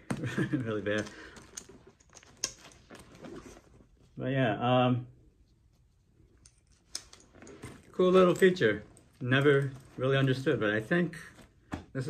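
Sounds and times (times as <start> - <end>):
straps rustling: 5.5 - 12.0.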